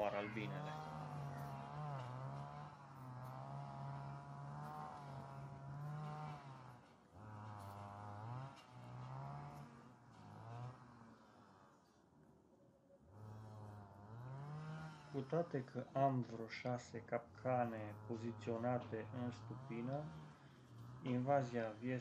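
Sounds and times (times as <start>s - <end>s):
hornet buzzing in flight: 13.1s - 15.2s.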